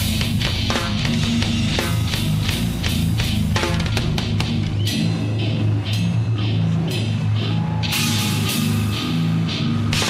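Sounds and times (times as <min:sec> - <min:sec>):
drums: 0:00.0 - 0:10.0
guitar and bass notes: 0:00.0 - 0:10.0.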